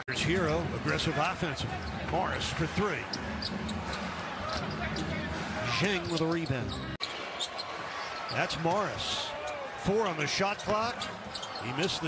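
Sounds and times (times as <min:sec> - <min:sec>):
shoes squeaking on court: 0:00.2 - 0:09.6, 0:10.4 - 0:12.0
crowd murmur: 0:00.4 - 0:06.8.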